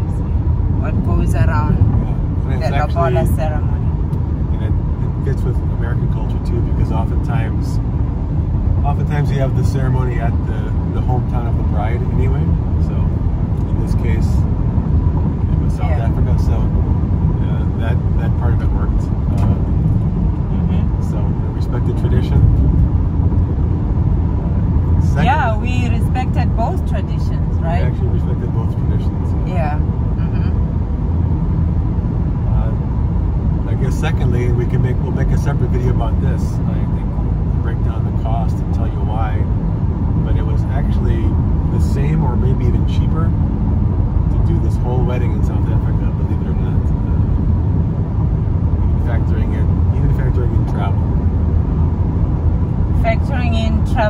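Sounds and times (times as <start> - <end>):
voices: 0.0 - 3.9, 4.5 - 7.8, 8.8 - 14.4, 15.4 - 16.7, 17.4 - 19.7, 20.5 - 22.6, 24.9 - 30.6, 32.5 - 32.8, 33.7 - 39.5, 40.2 - 43.4, 44.3 - 47.2, 48.9 - 51.0, 53.0 - 54.0
car road and engine rumble: 0.0 - 54.0.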